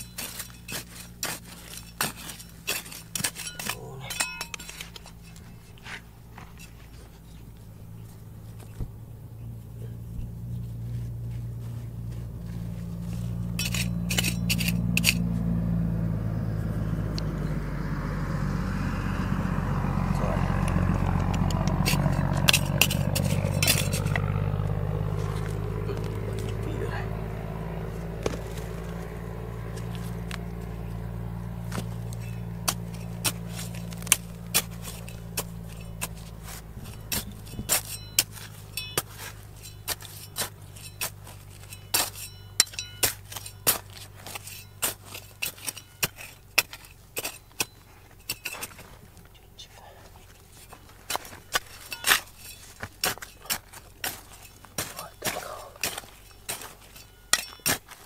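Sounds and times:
stones clicking against shovel: 0:00.0 - 0:07.1, 0:13.2 - 0:15.3, 0:20.2 - 0:24.6, 0:31.6 - 0:49.5, 0:50.1 - 0:58.0
shovel digging rocky soil: 0:00.0 - 0:07.6, 0:12.1 - 0:15.6, 0:20.1 - 0:58.0
steady low hum: 0:00.0 - 0:57.9.

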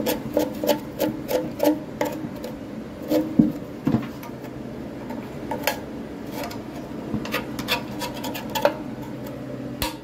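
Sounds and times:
hand tool scraping metal drum: 0:00.0 - 0:03.6, 0:05.5 - 0:09.3.

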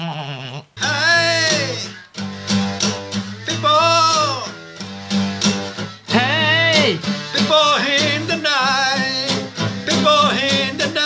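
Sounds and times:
man singing: 0:00.8 - 0:02.1, 0:03.4 - 0:04.6, 0:06.1 - 0:11.0
acoustic guitar strumming: 0:00.8 - 0:11.0.

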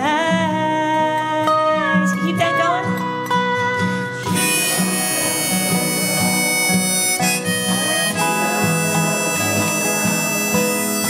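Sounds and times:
acoustic guitar strumming: 0:00.0 - 0:11.0
harmonica long held notes: 0:03.9 - 0:11.0
dobro sliding between notes: 0:04.2 - 0:11.0.

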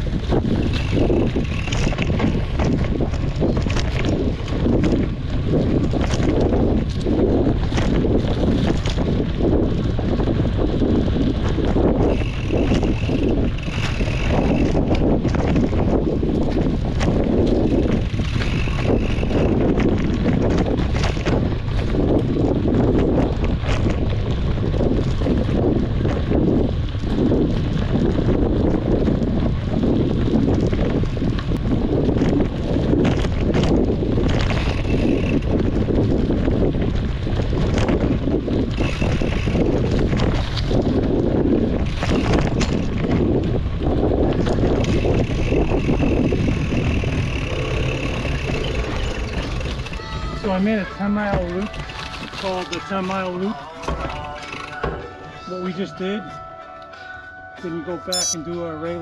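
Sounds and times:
bike rattling over bumps: 0:00.0 - 0:55.2
wind rushing on microphone: 0:00.0 - 0:56.5.

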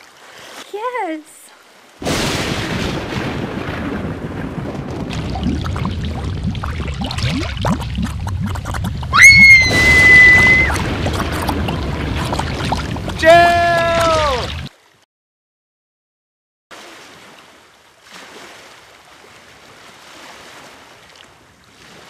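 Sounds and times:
water rushing and gurgling: 0:00.0 - 0:15.0, 0:16.7 - 0:22.0
high-pitched scream: 0:09.1 - 0:10.8.

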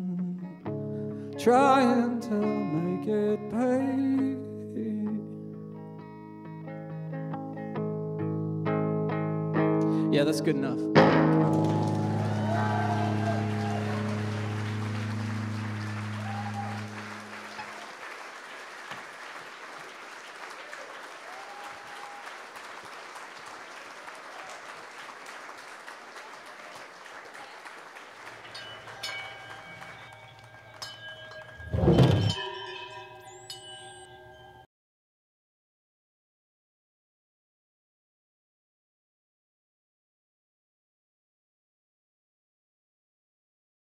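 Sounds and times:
guitar chord ringing: 0:00.7 - 0:17.7
audience applause: 0:11.4 - 0:31.6
loud thump: 0:31.7 - 0:32.4.

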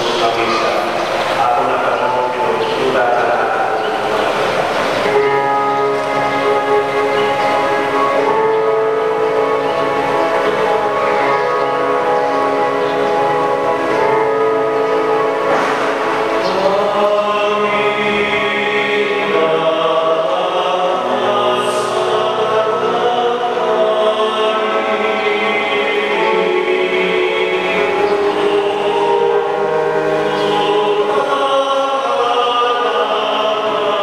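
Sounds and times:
choir singing held chords: 0:00.0 - 0:34.0.

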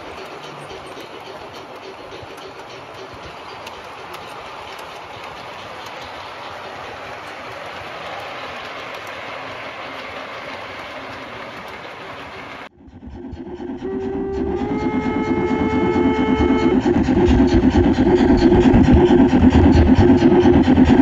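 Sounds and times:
model wagons rolling on track: 0:00.0 - 0:12.7
model steam locomotive chuffing: 0:00.0 - 0:21.0
locomotive whistle: 0:13.4 - 0:18.6.

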